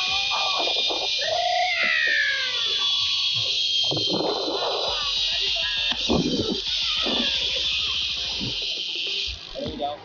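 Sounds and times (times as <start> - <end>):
zipline pulley whirring: 0.0 - 10.0.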